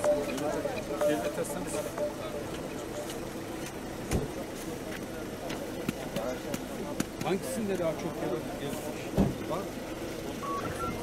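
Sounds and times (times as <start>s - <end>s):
people talking indistinctly: 0.0s - 11.0s
thump: 4.1s - 4.3s, 9.2s - 9.4s.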